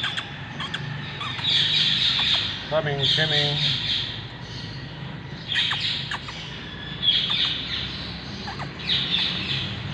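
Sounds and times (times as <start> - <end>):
downward-sliding bird calls: 0.0 - 3.8, 5.5 - 7.7
birds chirping: 0.0 - 9.9.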